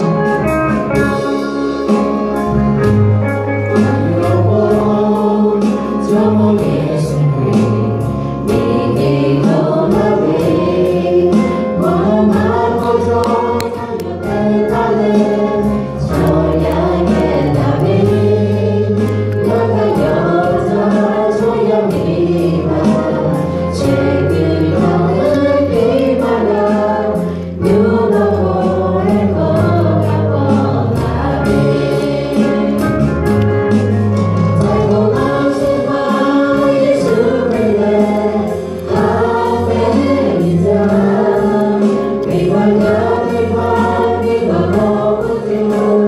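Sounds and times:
group singing into microphones: 0.0 - 2.9, 3.5 - 46.0
bass line: 0.0 - 46.0
steady drum beat: 0.0 - 46.0.

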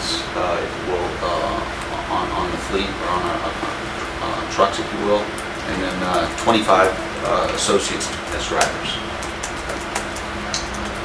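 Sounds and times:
room noise hum and hiss: 0.0 - 11.0.

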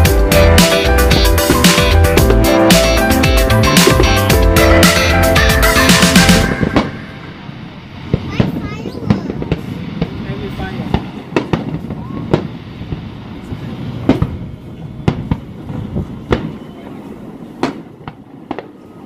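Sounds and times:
low rumble: 0.0 - 17.5
fireworks bangs: 0.0 - 19.0.

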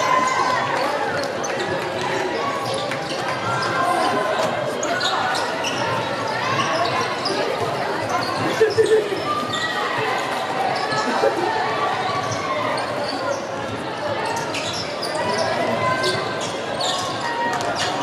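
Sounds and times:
voices in echoing hall: 0.0 - 18.0.

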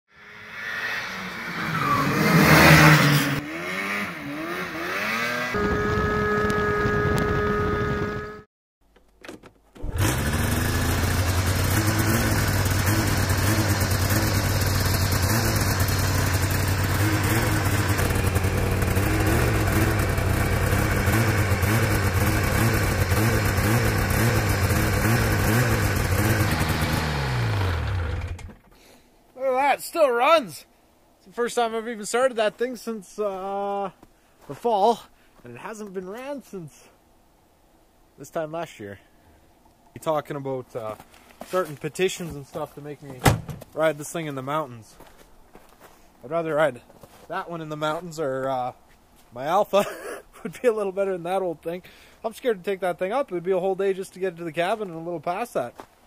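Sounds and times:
snowmobile engine idling: 9.9 - 28.5.

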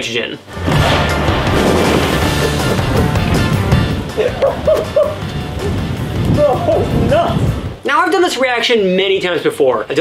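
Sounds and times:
music playing: 0.5 - 7.8
steam explosion rush: 0.6 - 4.3.

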